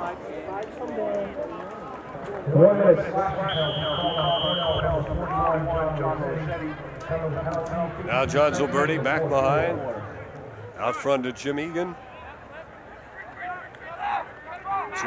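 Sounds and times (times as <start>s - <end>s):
men talking: 0.0s - 15.0s
high whistle blast: 3.4s - 5.0s.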